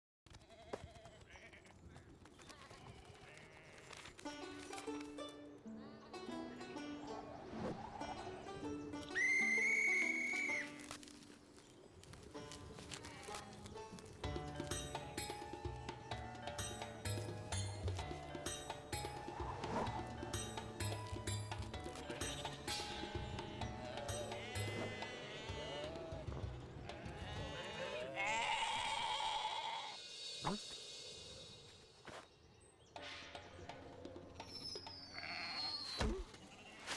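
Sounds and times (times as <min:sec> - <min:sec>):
cartoon music with plucked strings: 0:04.3 - 0:07.4, 0:14.1 - 0:27.8
long whistle blast: 0:09.2 - 0:10.7
cartoon sheep bleating: 0:23.2 - 0:30.0.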